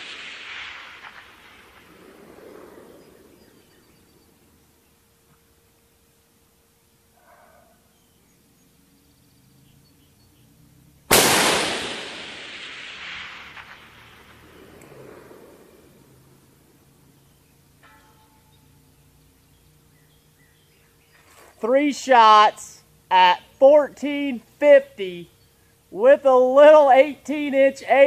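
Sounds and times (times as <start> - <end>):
rifle shot with echo: 0.0 - 4.1, 11.1 - 16.2.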